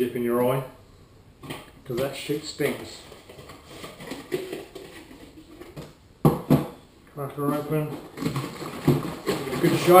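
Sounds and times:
handling plastic parts: 1.4 - 6.7, 7.4 - 10.0.

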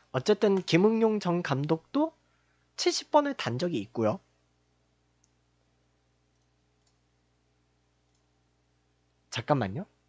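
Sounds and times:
low electrical hum: 0.0 - 10.0
faint computer clicks: 5.2 - 5.4, 6.3 - 7.1, 8.0 - 8.3.

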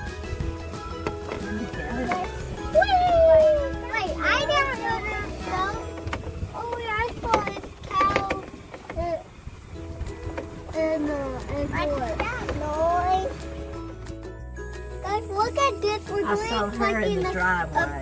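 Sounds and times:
background music: 0.0 - 7.4, 9.5 - 18.0.

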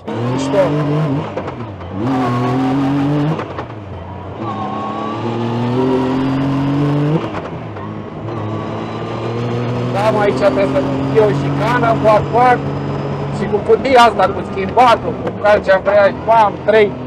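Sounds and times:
engine revving under acceleration: 0.0 - 17.0.

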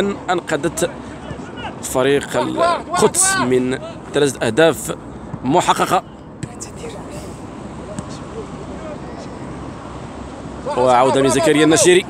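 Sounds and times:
distant shouts: 0.9 - 4.2, 10.4 - 12.0.

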